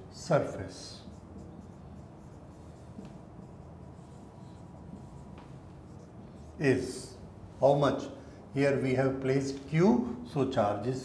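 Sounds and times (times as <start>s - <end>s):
marker writing on whiteboard: 0.4s - 7.3s.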